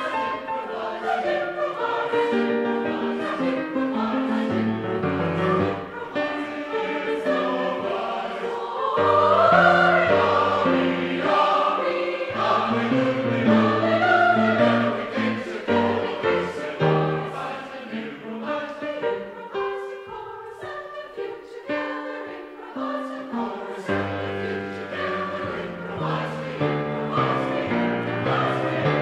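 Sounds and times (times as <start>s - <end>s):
mixed choir singing: 0.0s - 29.0s
piano accompaniment: 0.0s - 29.0s.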